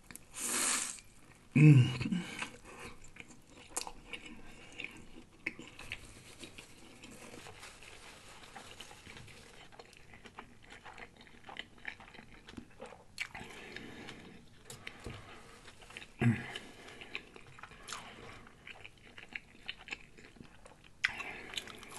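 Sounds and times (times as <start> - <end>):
person chewing crunchy food: 0.9 - 21.9.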